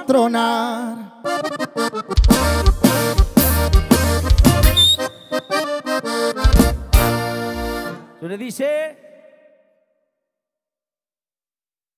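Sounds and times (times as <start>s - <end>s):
accordion: 0.9s - 8.2s
tuba bass: 1.3s - 8.1s
guitar: 1.4s - 8.2s
drums: 2.1s - 5.1s, 6.4s - 7.8s.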